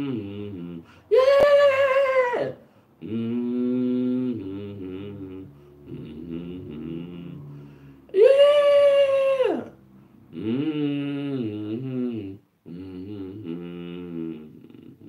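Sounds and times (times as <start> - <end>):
man singing held notes: 0.0 - 9.7, 10.3 - 15.0.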